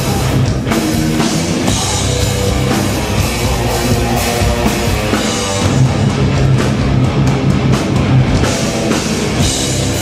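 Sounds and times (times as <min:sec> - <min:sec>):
bass guitar: 0:00.0 - 0:10.0
distorted electric guitars: 0:00.0 - 0:10.0
pounding drum kit: 0:00.0 - 0:10.0.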